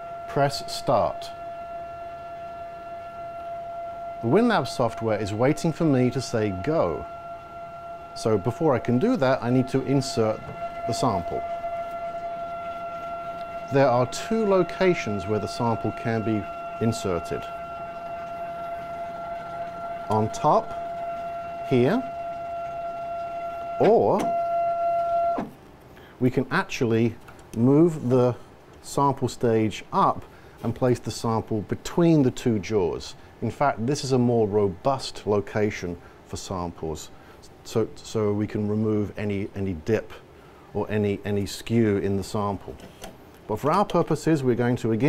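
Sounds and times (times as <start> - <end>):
steady electrical whine: 0.0 - 45.0.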